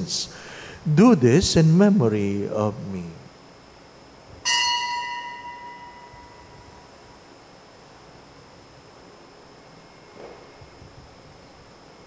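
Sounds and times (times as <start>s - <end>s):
small bell ringing: 4.5s - 6.7s.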